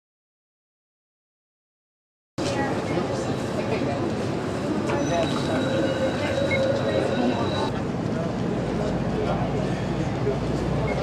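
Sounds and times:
people talking: 2.4 - 11.0
steady high-pitched squeal: 4.6 - 7.7.

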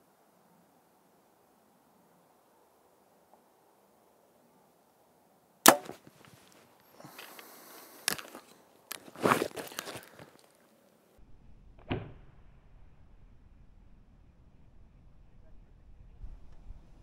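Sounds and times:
bow string crack: 5.6 - 10.6, 11.7 - 12.7
handling clicks and rustling: 5.7 - 10.9.

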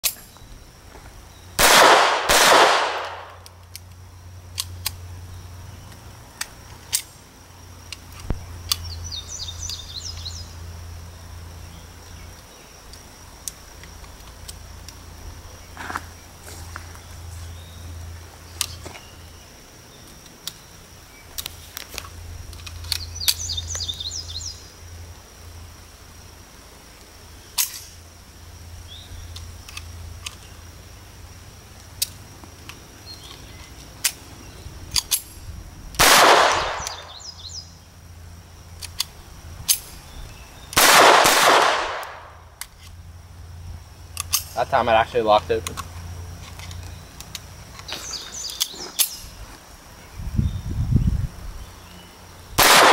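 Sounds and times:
pistol shots ringing out: 1.6 - 3.4, 36.0 - 37.2, 40.8 - 42.4, 52.6 - 52.9
small metallic clicks: 5.9 - 7.2, 21.3 - 23.9, 27.6 - 28.0, 34.9 - 35.4, 38.8 - 39.9, 44.1 - 44.6, 45.6 - 49.2.

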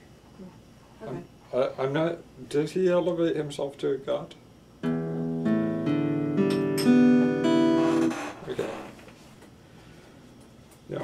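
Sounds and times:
acoustic guitar chords: 4.8 - 8.2.

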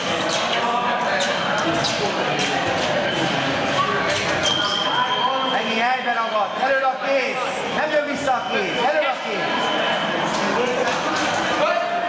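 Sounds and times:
voices in a large hall: 0.0 - 12.0.

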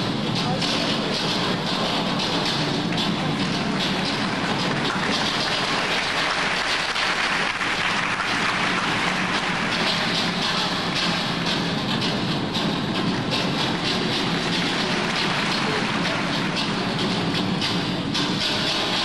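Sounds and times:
audience applauding: 0.6 - 19.0.

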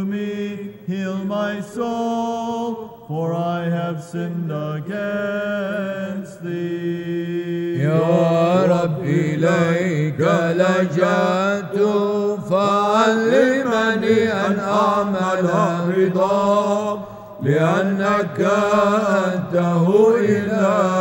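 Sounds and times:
men singing ornamented chant: 0.0 - 21.0.

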